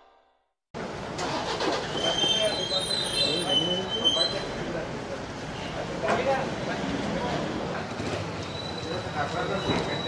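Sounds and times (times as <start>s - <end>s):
vehicles running: 0.8s - 10.0s
people talking: 2.0s - 10.0s.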